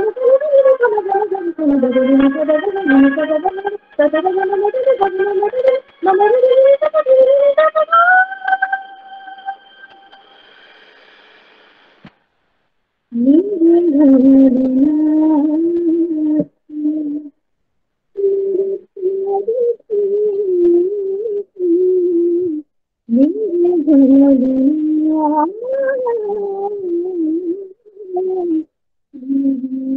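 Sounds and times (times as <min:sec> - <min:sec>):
woman singing a long note: 0:00.0 - 0:10.1.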